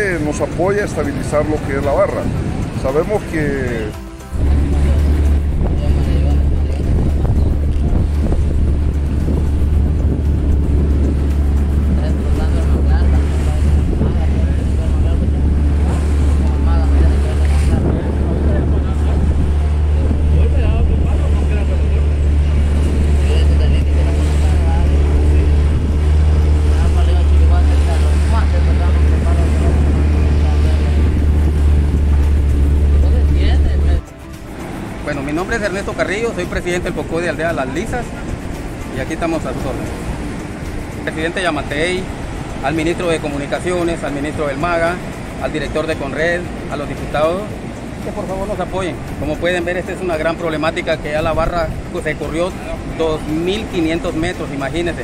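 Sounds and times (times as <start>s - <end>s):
boat motor droning: 0.0s - 55.0s
choppy water: 0.0s - 55.0s
wind: 0.0s - 55.0s.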